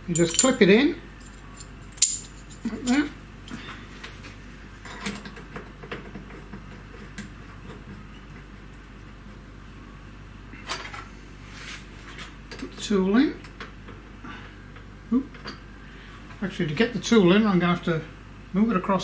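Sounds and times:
light metal taps and clinks: 0.1 - 0.6, 1.2 - 3.1.

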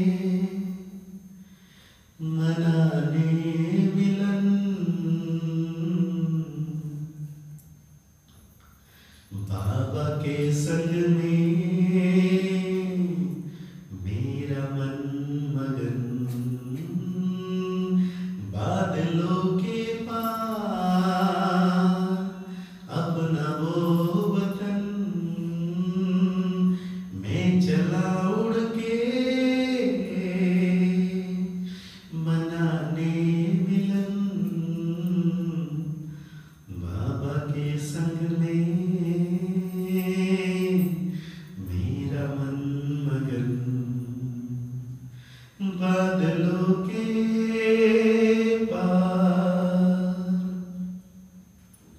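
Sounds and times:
slow devotional singing: 0.0 - 51.9
man chanting low drone: 2.2 - 7.6, 9.3 - 51.2.

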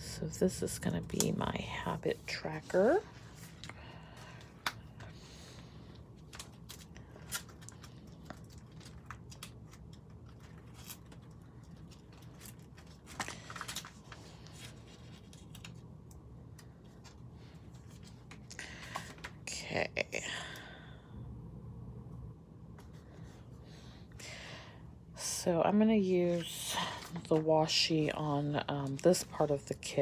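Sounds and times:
plastic sleeves rustling and clicking: 6.2 - 19.4.

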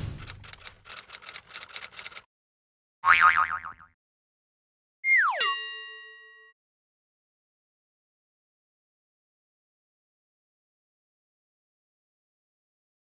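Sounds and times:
typewriter-like key clicks: 0.0 - 2.2
warbling boing: 3.0 - 3.9
ringing chime: 5.4 - 6.5.

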